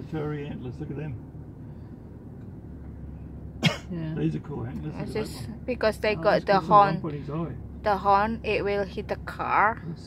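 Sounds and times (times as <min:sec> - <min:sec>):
car cabin hum: 0:00.0 - 0:10.0
person coughing: 0:03.6 - 0:03.9.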